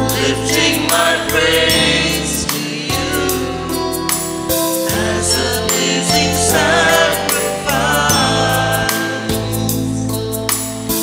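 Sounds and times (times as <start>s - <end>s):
choir singing a hymn: 0.0s - 10.3s
electronic keyboard bass notes: 0.0s - 11.0s.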